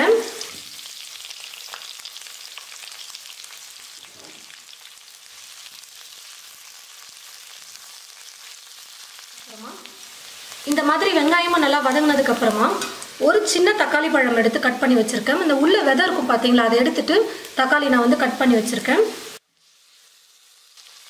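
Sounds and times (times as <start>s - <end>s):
onions sizzling in hot oil: 0.0s - 21.0s.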